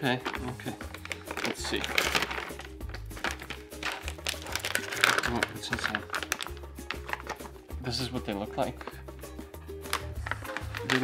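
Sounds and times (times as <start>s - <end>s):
plastic pouch crinkling: 0.0s - 7.6s, 9.8s - 11.0s
background music: 0.0s - 11.0s.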